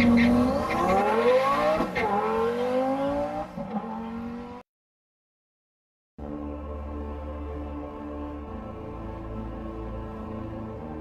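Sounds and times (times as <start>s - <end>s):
car engine accelerating hard: 0.0s - 4.6s.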